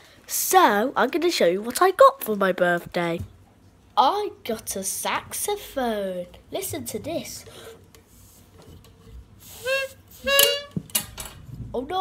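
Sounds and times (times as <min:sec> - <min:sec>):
toy saxophone notes: 0:09.4 - 0:10.9.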